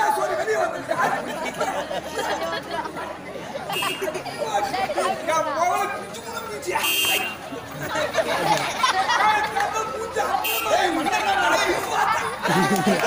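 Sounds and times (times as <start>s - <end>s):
men talking loudly: 0.0s - 13.0s.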